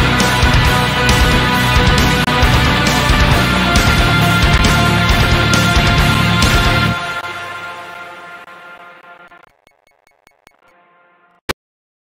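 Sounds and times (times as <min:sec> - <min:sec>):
sharp electronic ticks: 0:09.0 - 0:10.7.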